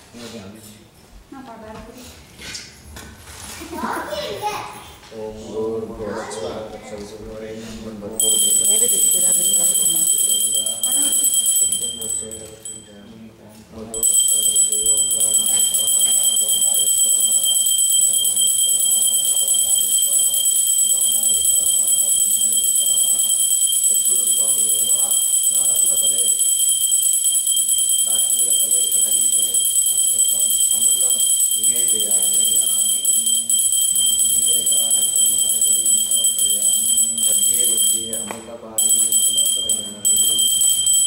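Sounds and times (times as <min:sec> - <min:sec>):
hand bell ringing: 0:08.2 - 0:13.0, 0:13.9 - 0:41.0.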